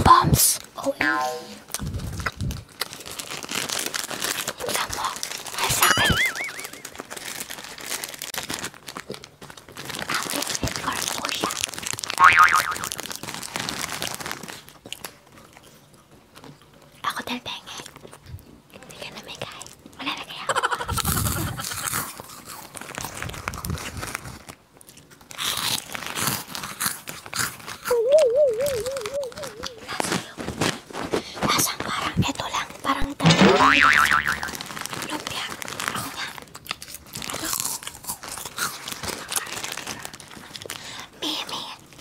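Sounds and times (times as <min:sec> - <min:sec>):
crunching and chewing snacks: 0:01.6 - 0:33.1, 0:33.8 - 0:42.0
plastic wrappers crinkling: 0:01.7 - 0:17.0, 0:19.4 - 0:42.0
wobbling boing tone: 0:05.8 - 0:06.7, 0:33.2 - 0:34.6.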